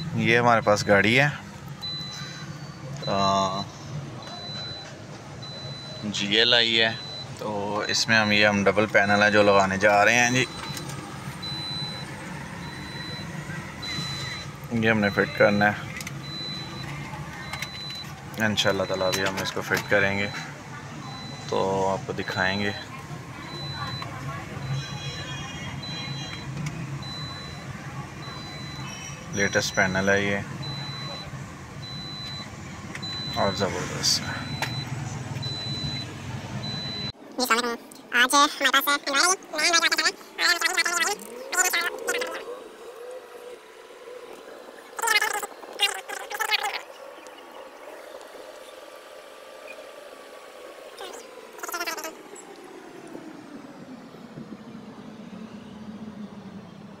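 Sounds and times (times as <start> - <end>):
car engine hum: 0.0 - 57.0
high-pitched electronic beep: 11.4 - 14.5, 23.5 - 30.0, 34.4 - 37.2.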